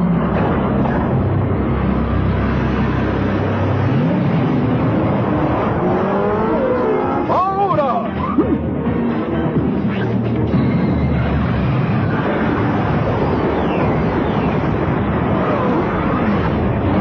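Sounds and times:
cartoon engines rumbling: 0.0s - 17.0s
gliding engine whines: 0.0s - 17.0s.

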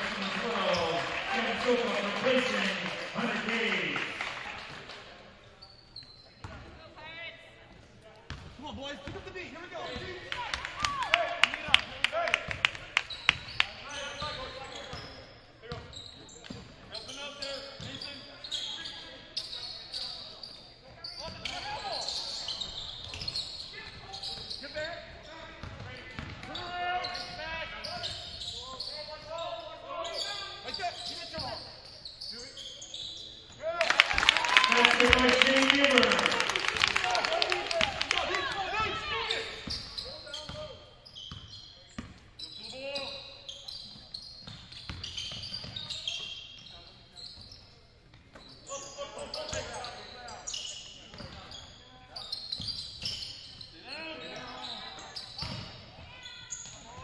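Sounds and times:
voices calling out in hall: 0.0s - 6.1s, 8.6s - 15.2s, 16.0s - 41.8s.

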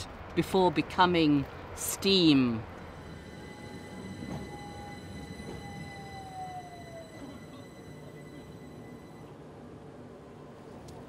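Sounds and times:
electric train rumbling past: 0.0s - 10.8s
train high whine: 1.5s - 10.8s.

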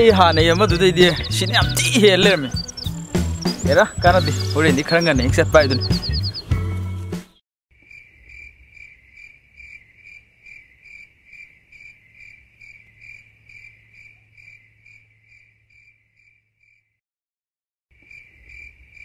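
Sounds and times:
music: 0.0s - 7.4s
cricket chirping: 2.2s - 5.0s, 7.8s - 17.0s, 18.0s - 19.0s.

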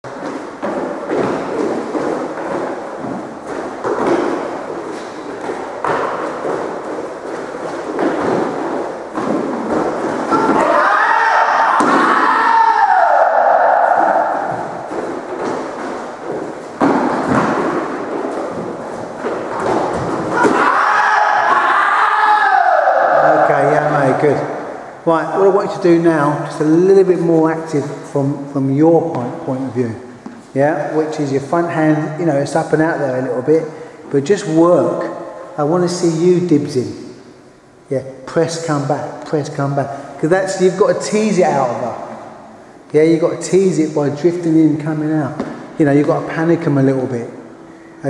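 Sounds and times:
feet stamping on wooden floor: 0.0s - 10.8s, 14.4s - 21.2s.

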